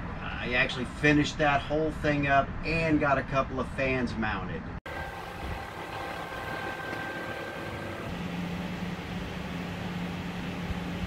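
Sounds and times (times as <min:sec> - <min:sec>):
steady low hum: 0:04.8 - 0:11.0
cabin fans whirring: 0:04.9 - 0:11.0
thin high tone: 0:04.9 - 0:11.0.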